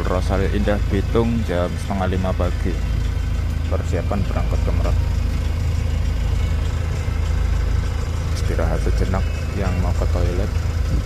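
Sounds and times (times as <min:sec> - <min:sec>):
bus diesel engine idling: 0:00.0 - 0:11.0.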